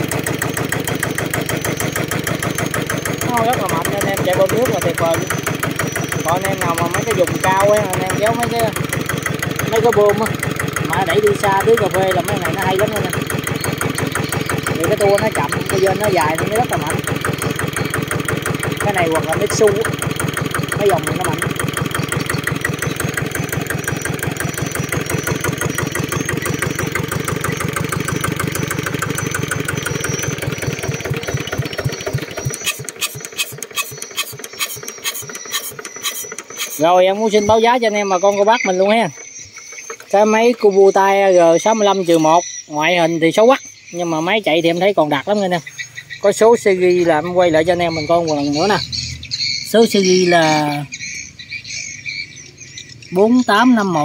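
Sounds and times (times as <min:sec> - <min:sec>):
stationary engine running: 0:00.0 - 0:54.0
insects chirring: 0:01.6 - 0:54.0.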